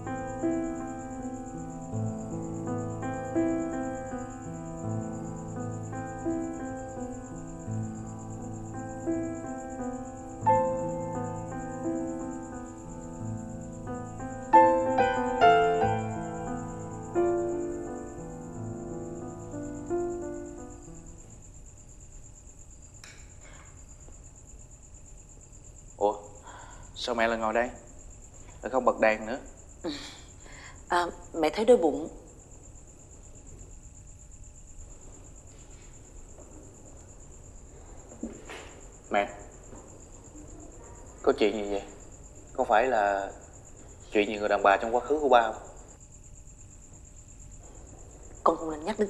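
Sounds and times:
soft keyboard music: 0:00.0 - 0:21.4
crickets trilling: 0:00.0 - 0:49.0
faint low hum: 0:00.0 - 0:49.0.

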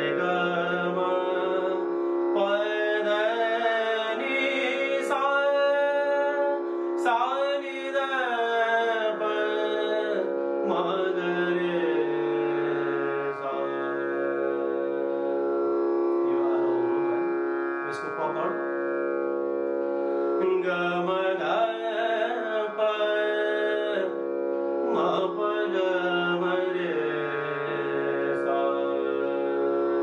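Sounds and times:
man singing: 0:00.0 - 0:15.1, 0:20.4 - 0:24.2, 0:24.8 - 0:29.8
harmonium sustained notes: 0:00.0 - 0:30.0.

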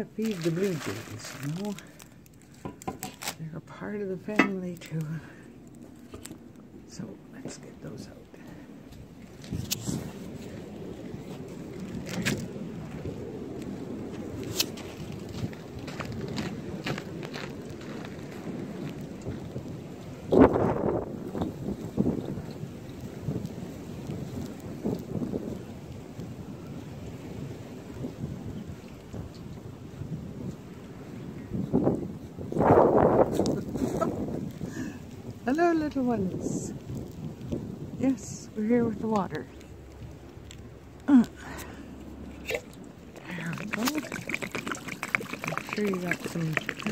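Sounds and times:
microphone handling noise: 0:08.4 - 0:10.6.

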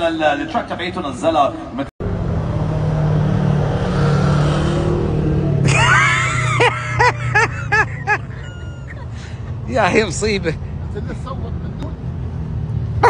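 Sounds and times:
vehicle engine revving: 0:02.0 - 0:08.4.

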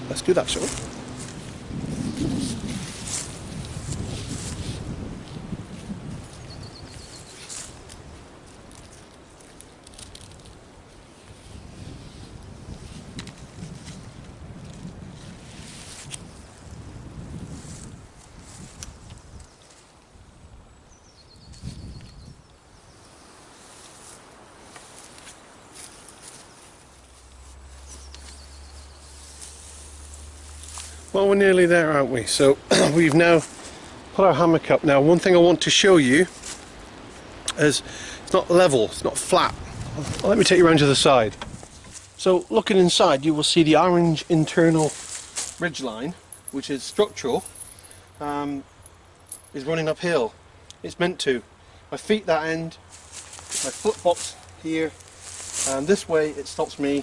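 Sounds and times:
footsteps: 0:00.4 - 0:10.4, 0:23.6 - 0:31.2, 0:39.8 - 0:42.5, 0:44.4 - 0:48.0, 0:52.9 - 0:56.1
rustling and handling noises: 0:02.3 - 0:16.7, 0:23.3 - 0:31.7, 0:36.0 - 0:37.4, 0:39.9 - 0:49.8, 0:52.8 - 0:57.0
faint bird chirps: 0:06.4 - 0:07.5, 0:20.7 - 0:23.4.

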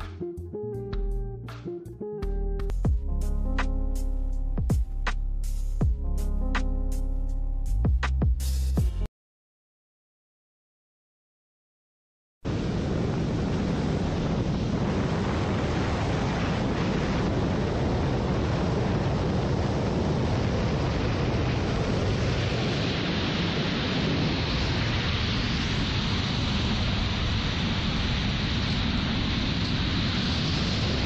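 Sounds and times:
wind rushing over microphone: 0:12.4 - 0:31.0.

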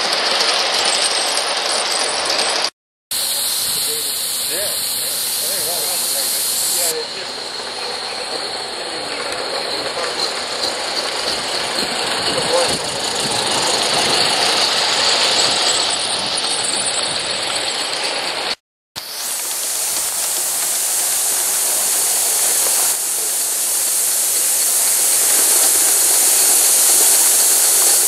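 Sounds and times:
model steam locomotive running: 0:00.0 - 0:28.0
steam hissing: 0:01.9 - 0:28.0.

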